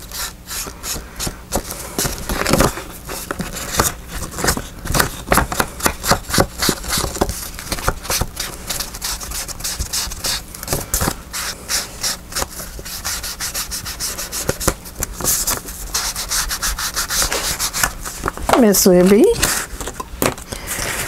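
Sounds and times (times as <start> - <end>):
tool scrubbing on paper: 6.0 - 10.5, 11.3 - 19.8.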